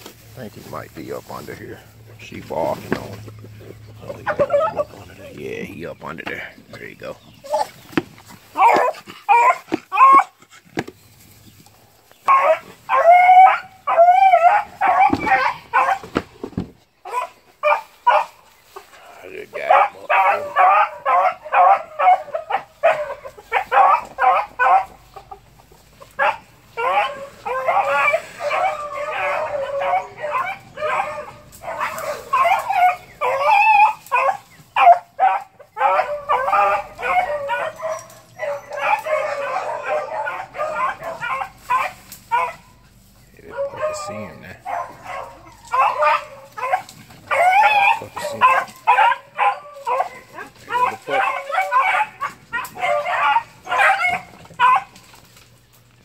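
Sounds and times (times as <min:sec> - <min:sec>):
young dogs barking and yelping: 0:00.0 - 0:56.0.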